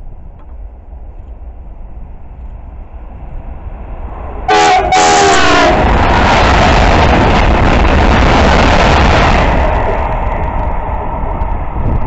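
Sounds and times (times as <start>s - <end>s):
train rumbling: 0.0s - 12.0s
locomotive horn blasts: 4.5s - 5.9s.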